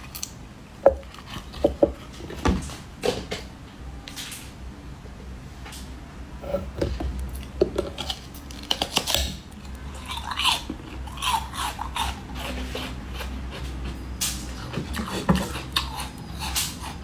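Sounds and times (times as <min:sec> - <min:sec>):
mouth chewing ice: 0:07.2 - 0:17.0.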